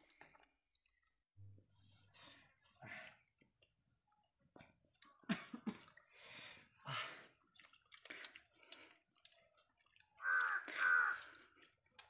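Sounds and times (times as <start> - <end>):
crow cawing: 10.2 - 11.5.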